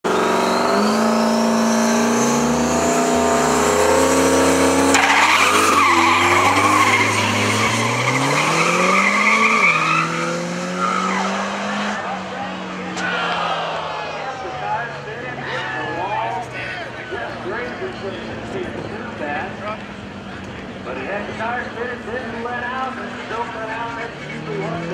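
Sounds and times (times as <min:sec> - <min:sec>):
drag car engine at high revs: 0:00.0 - 0:15.4, 0:17.2 - 0:24.9
tyre squeal: 0:04.9 - 0:11.5.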